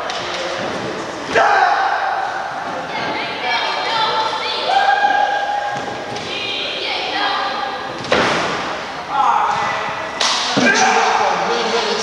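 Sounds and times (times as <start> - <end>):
people shouting: 1.3 - 2.6, 3.8 - 6.0, 10.5 - 11.5.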